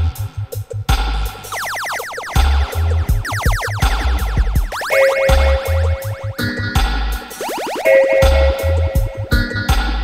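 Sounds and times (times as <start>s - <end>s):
dub siren pitch sweeps with echo: 1.5s - 9.4s.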